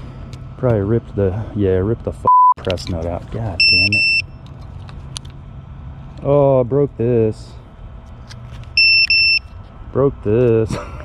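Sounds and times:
short electronic beeps: 2.3s - 2.6s, 3.6s - 4.4s, 8.8s - 9.6s.

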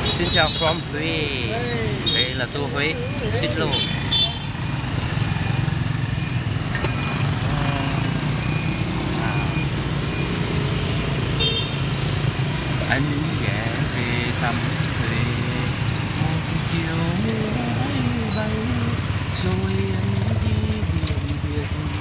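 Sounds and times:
motorbike and car traffic rumble: 0.0s - 22.0s.

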